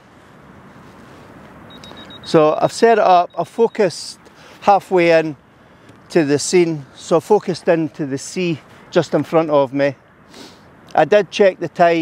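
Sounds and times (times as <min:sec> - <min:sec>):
beach ambient rushing: 0:00.0 - 0:12.0
faint high beeps: 0:01.7 - 0:04.1.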